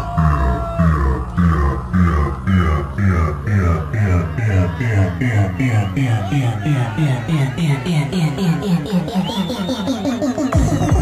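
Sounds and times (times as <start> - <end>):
gritty synth pattern: 0.0 - 11.0
rolling bassline: 0.0 - 11.0.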